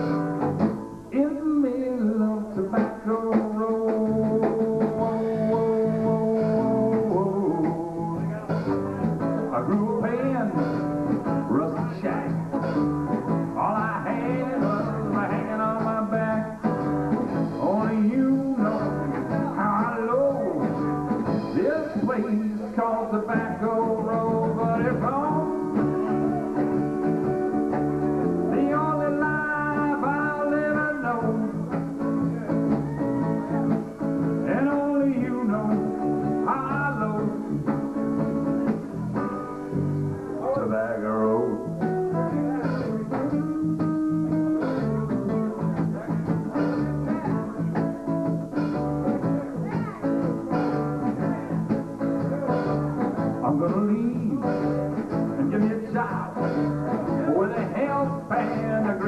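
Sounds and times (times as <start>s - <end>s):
electric bass: 0.0s - 1.0s, 3.8s - 59.0s
strummed acoustic guitar: 0.0s - 59.0s.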